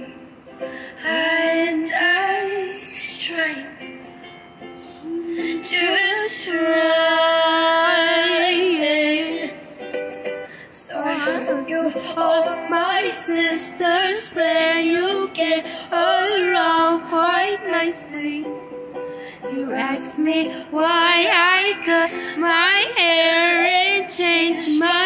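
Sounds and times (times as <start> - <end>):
ukulele: 0.0 - 25.0
woman singing: 0.8 - 3.8, 5.0 - 9.7, 10.7 - 25.0.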